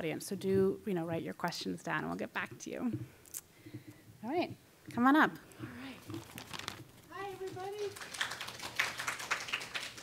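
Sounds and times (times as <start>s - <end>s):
scattered applause: 7.2s - 10.0s.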